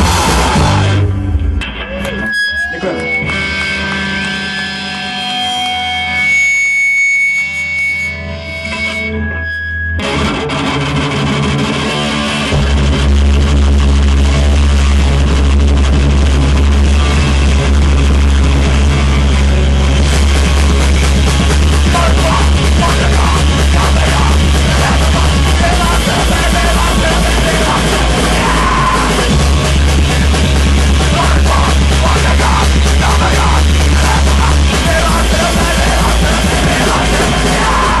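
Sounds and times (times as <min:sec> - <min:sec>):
punk band playing: 0:00.0 - 0:06.4, 0:10.0 - 0:38.0
guitar feedback: 0:00.0 - 0:38.0.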